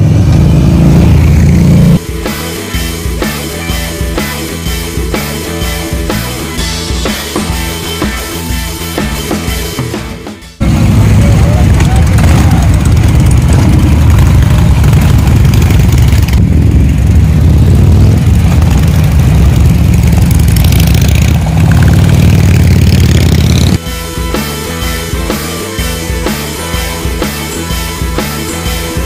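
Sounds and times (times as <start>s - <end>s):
motorcycles rumbling: 0.0s - 29.0s.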